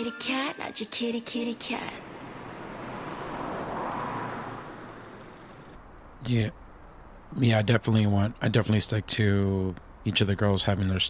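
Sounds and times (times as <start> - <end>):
car passing by: 1.8 - 5.8.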